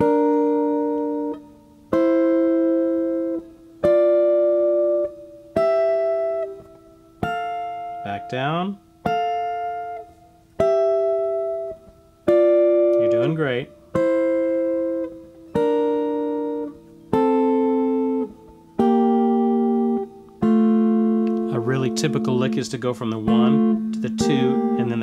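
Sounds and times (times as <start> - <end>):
electric guitar plucking paired notes: 0.0 - 25.0.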